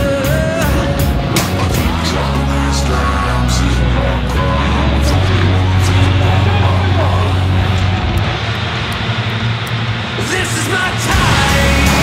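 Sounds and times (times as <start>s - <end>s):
background music with heavy bass: 0.0s - 12.0s
motocross bikes revving: 0.0s - 12.0s
sharp ticks: 7.7s - 11.2s.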